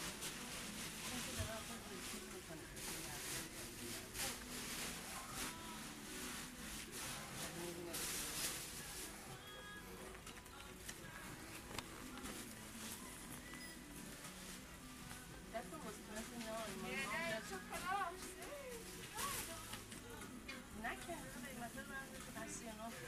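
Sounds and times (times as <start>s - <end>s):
faint background music: 0.0s - 23.0s.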